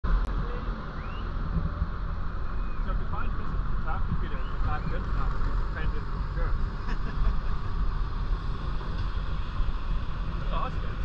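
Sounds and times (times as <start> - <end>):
vehicle rumble on sand: 0.1 - 11.0.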